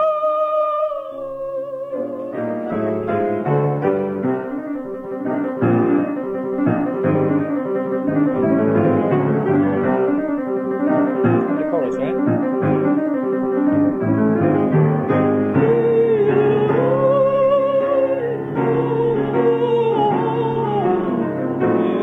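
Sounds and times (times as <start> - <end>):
piano playing chords and melody: 0.0 - 22.0.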